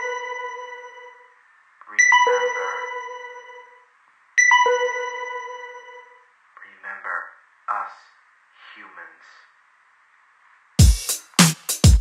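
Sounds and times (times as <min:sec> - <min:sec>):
faint steady hiss: 0:01.0 - 0:02.8, 0:06.0 - 0:11.9.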